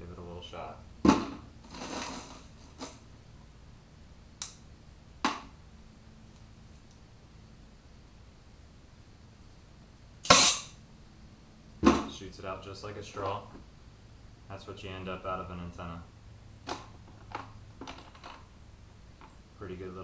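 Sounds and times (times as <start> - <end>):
compressed air blasts: 10.2 - 10.8.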